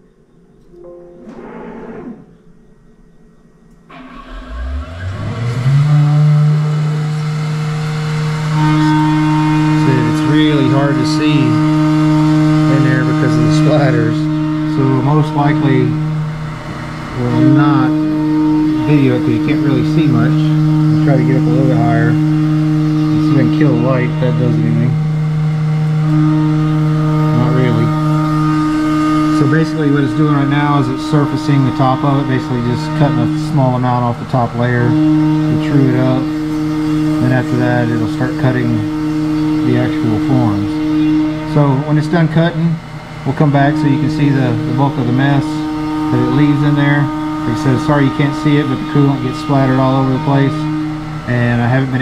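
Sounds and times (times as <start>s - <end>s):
milling machine spindle whine: 3.7s - 52.0s.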